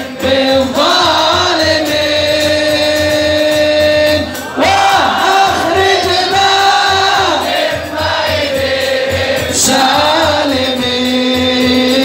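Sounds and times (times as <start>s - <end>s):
men singing devotional chant: 0.0s - 12.0s.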